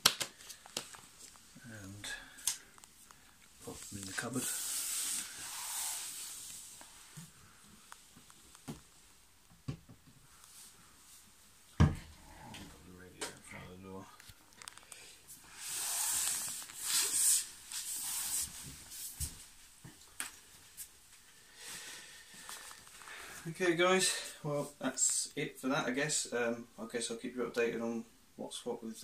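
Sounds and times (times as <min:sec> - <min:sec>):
rustling: 0:00.1 - 0:09.2.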